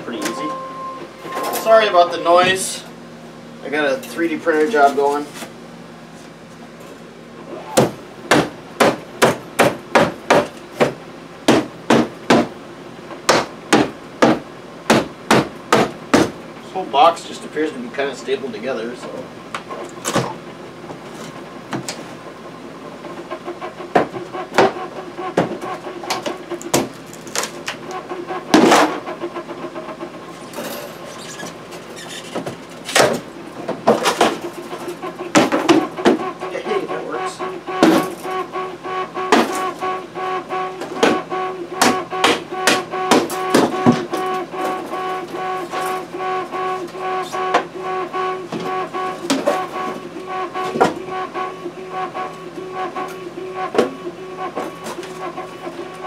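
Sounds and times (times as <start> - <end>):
printer motors humming: 0.0 - 56.0
hammer knocking on wooden crate: 7.8 - 12.5, 13.3 - 16.4.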